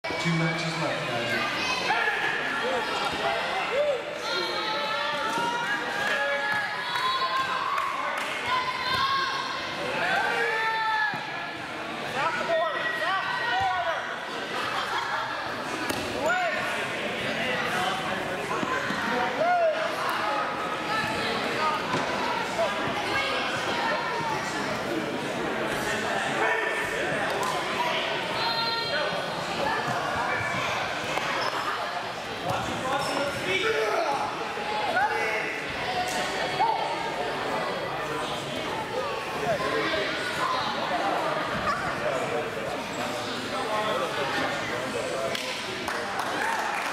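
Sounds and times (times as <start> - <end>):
indistinct talking of people: 0.0 - 46.9.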